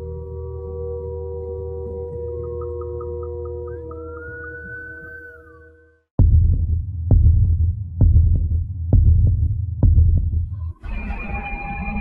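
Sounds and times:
heartbeat-like low thuds: 6.2 - 10.6.

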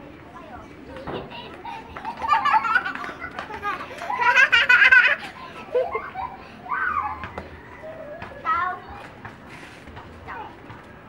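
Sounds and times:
children calling out: 0.9 - 9.1.

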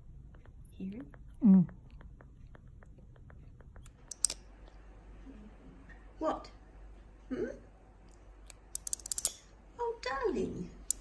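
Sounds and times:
flying-fox pup clicking: 0.0 - 4.8.

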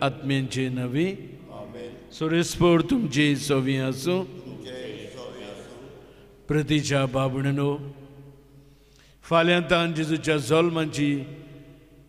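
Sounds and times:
man intoning prayer into microphone: 0.0 - 8.4, 9.2 - 11.7.

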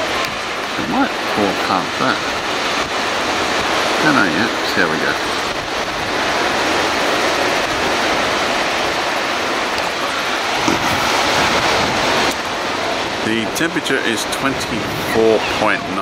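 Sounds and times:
surf breaking on beach: 0.0 - 16.0
wind on microphone: 0.0 - 16.0.

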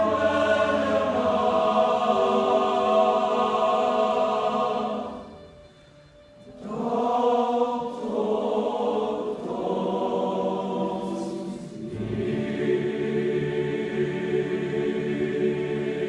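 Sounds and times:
boys' choir singing chords: 0.0 - 16.0.

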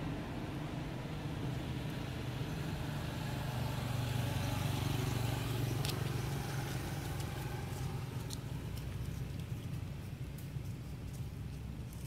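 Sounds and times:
motor vehicle engine hum: 0.0 - 12.0.

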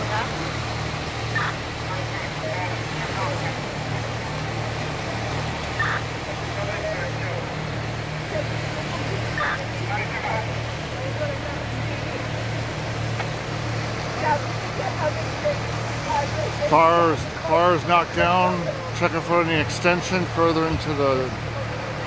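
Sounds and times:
fire engine pump droning: 0.0 - 22.0.

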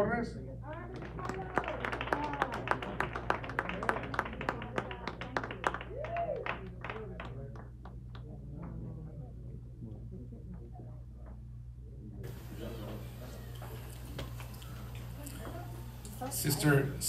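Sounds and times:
small audience clapping: 0.7 - 9.0, 12.3 - 16.1
voices calling out: 12.3 - 17.0.

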